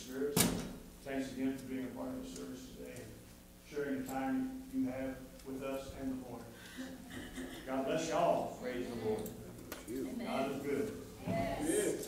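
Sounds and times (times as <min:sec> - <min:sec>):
man speaking: 0:07.5 - 0:12.0.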